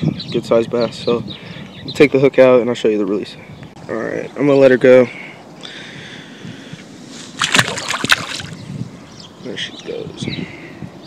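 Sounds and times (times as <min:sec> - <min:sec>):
fish splashing into water: 0:07.3 - 0:08.6.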